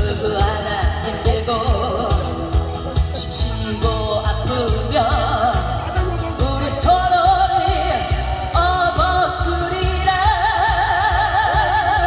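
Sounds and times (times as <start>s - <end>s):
amplified instrumental music: 0.0s - 12.0s
woman singing into a microphone: 0.0s - 12.0s.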